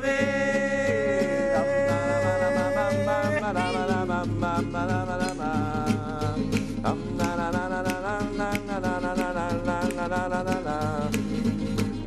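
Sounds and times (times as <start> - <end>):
classical guitar strumming: 0.0 - 12.0
man singing: 0.0 - 12.0.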